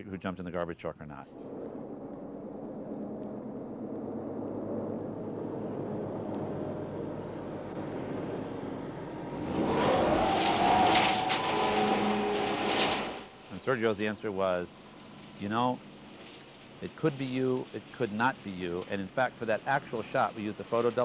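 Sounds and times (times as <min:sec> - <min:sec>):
garbage truck engine revving: 0:05.1 - 0:21.0.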